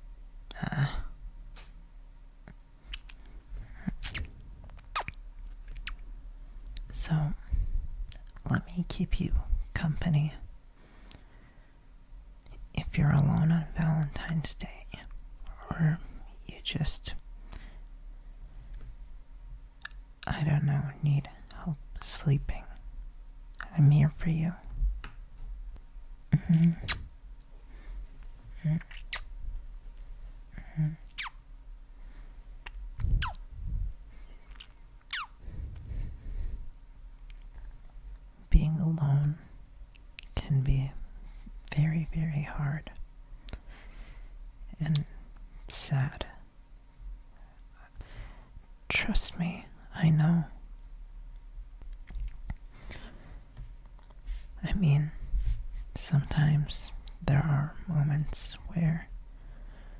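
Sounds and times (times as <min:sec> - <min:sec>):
person whispering: 0:00.5 - 0:01.2, 0:06.8 - 0:10.5, 0:12.5 - 0:17.2, 0:20.2 - 0:22.8, 0:23.6 - 0:24.7, 0:26.3 - 0:27.0, 0:28.5 - 0:29.2, 0:30.6 - 0:31.3, 0:38.4 - 0:39.5, 0:40.2 - 0:43.0, 0:44.7 - 0:46.4, 0:48.9 - 0:50.6, 0:54.5 - 0:55.2, 0:55.9 - 0:59.2
kissing squeaks: 0:02.9 - 0:03.2, 0:03.9 - 0:05.2, 0:26.5 - 0:27.1, 0:28.8 - 0:29.3, 0:31.1 - 0:31.4, 0:32.6 - 0:33.4, 0:34.6 - 0:35.4
mouth sounds: 0:02.9 - 0:06.0, 0:26.3 - 0:27.1, 0:28.5 - 0:29.3, 0:30.6 - 0:31.4, 0:32.6 - 0:33.9, 0:34.5 - 0:36.0
person humming: 0:26.3 - 0:27.0, 0:28.5 - 0:29.1, 0:30.6 - 0:31.3.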